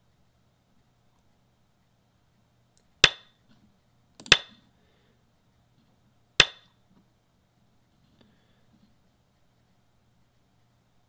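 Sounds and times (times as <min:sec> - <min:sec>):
game stone clacks: 0:04.2 - 0:04.6, 0:06.4 - 0:06.7.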